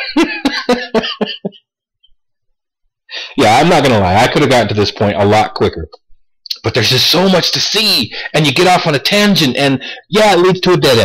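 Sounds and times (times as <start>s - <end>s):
man laughing: 0.0s - 1.7s.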